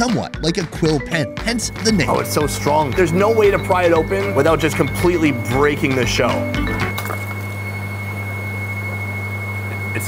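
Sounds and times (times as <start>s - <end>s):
air compressor humming: 0.0s - 10.0s
faint high whine: 1.2s - 10.0s.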